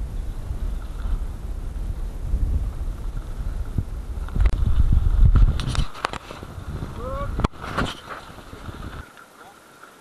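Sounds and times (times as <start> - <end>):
wind buffeting microphone: 0.0 - 9.1.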